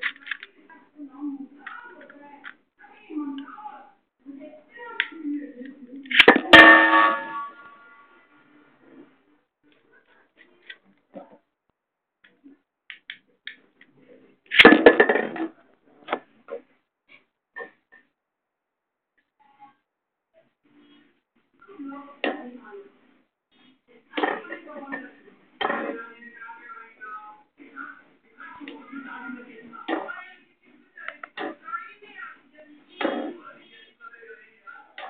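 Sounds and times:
loud metallic clang with ringing: 6.4 - 7.9.

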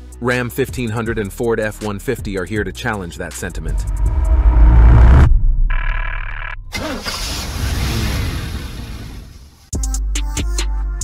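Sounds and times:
loud low engine rumble: 3.6 - 7.3
engine revving: 3.6 - 8.6.

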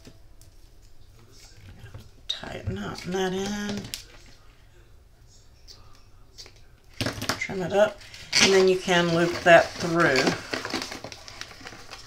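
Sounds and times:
rustling of ribbon and card: 2.8 - 4.5, 6.9 - 12.0.

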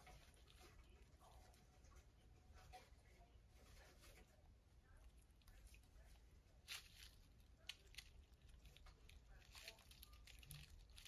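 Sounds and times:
claws scrabbling on bedding: 0.0 - 11.0.

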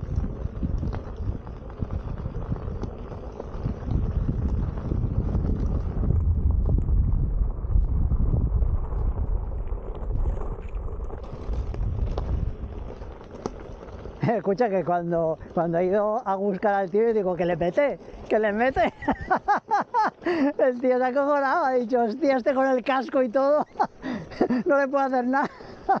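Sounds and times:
wind buffeting microphone: 0.0 - 20.6
tyre rolling on gravel: 0.0 - 26.0
clicks and knocks from stones: 9.7 - 14.3.

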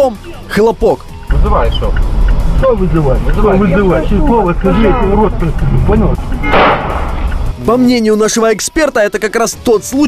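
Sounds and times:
background music: 0.0 - 10.0
steady low rumble: 1.2 - 7.7.

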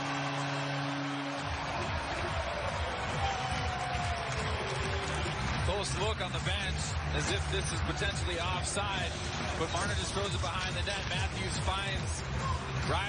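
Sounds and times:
arena crowd cheering: 0.0 - 13.0
loud arena music with beat: 0.0 - 13.0.

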